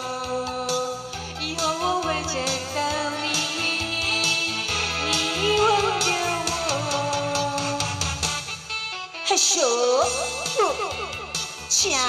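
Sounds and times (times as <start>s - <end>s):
pop backing track music: 0.0s - 12.0s.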